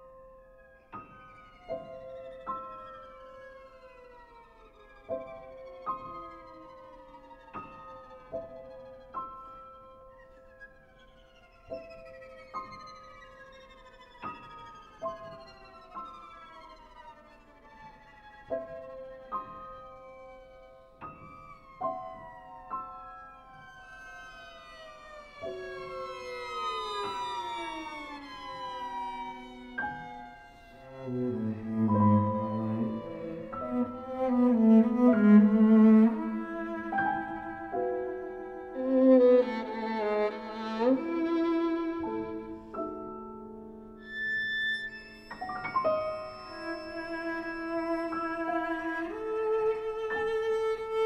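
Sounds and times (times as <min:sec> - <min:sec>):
violin cello and piano music: 0:00.0 - 0:51.0
strings sliding downward: 0:23.4 - 0:51.0.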